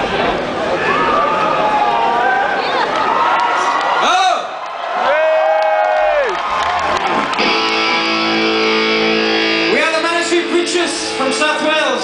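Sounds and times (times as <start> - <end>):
electric guitar held notes: 7.3 - 11.4.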